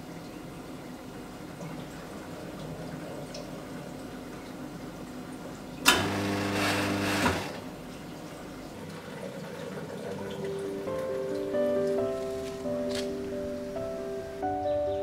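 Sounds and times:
espresso machine motor hum with hiss: 5.9s - 7.6s
soft music with held notes: 10.0s - 15.0s.

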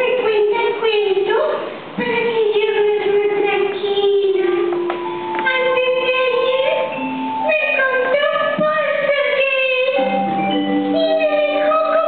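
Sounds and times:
recorded backing music: 0.0s - 12.0s
woman singing into microphone: 10.9s - 12.0s.

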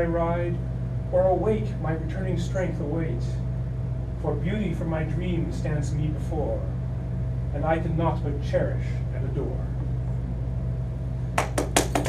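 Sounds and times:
low room hum: 0.0s - 12.0s
audience clapping: 11.4s - 12.0s.

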